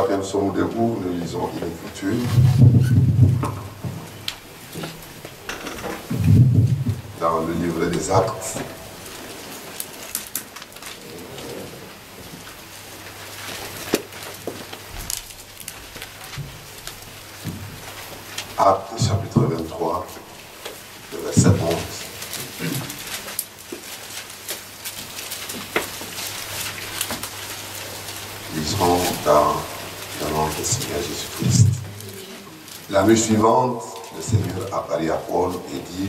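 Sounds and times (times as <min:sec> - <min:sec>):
many voices praying together: 0:00.0 - 0:03.8, 0:07.2 - 0:09.0, 0:18.6 - 0:20.2, 0:21.1 - 0:23.0, 0:28.5 - 0:36.0
faint steady hum: 0:00.0 - 0:36.0
paper sheets rustling: 0:01.5 - 0:36.0.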